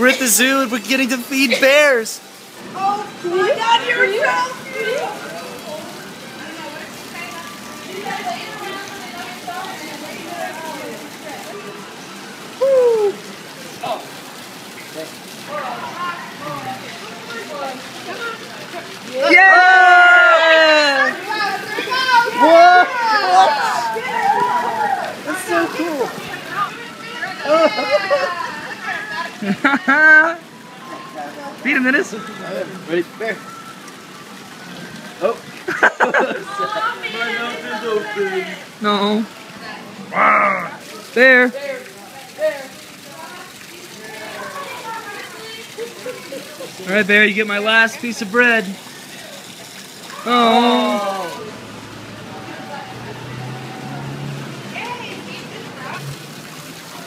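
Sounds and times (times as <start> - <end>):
water jet splashing into pool: 0.0 - 57.0
person exclaiming loudly: 50.2 - 51.4.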